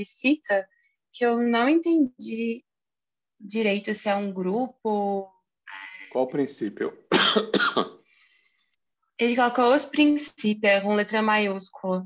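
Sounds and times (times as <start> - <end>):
man coughing: 7.1 - 8.0.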